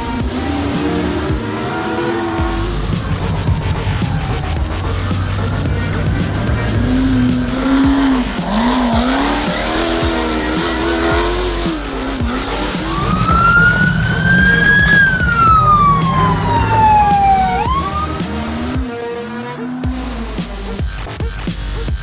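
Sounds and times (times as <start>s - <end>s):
siren-like wail: 0.0s - 19.9s
buggy engine revving: 0.0s - 22.0s.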